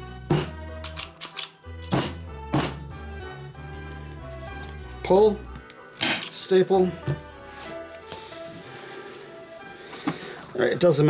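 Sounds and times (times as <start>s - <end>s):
background music: 0.0s - 11.0s
staple gun snapping: 0.8s - 1.6s, 5.6s - 6.4s.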